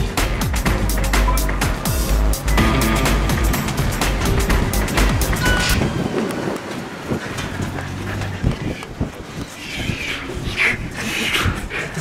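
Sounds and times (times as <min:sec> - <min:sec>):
background music: 0:00.0 - 0:06.1.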